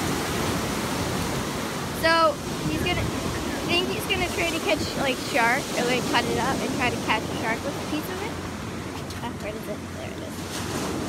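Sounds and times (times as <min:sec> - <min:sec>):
surf washing over sand: 0:00.0 - 0:11.0.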